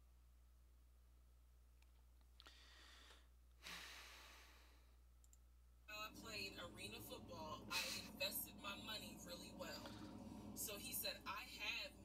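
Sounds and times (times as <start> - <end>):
faint breathy hiss: 2.4 - 5.0
person speaking: 5.9 - 12.0.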